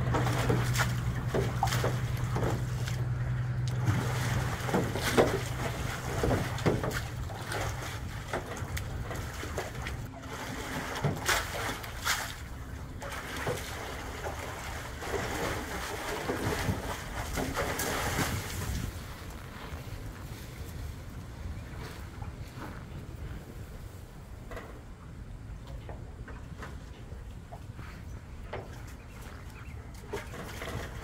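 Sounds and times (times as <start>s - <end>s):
water splashing in metal tank: 0.0s - 18.9s
wind on microphone: 16.3s - 25.5s.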